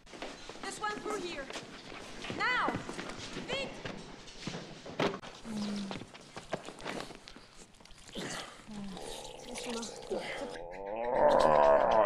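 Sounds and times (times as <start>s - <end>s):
person speaking: 8.7s - 12.0s.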